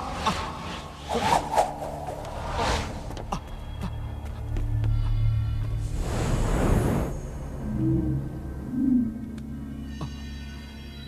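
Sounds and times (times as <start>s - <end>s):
swooshing sound effects: 0.7s - 3.2s.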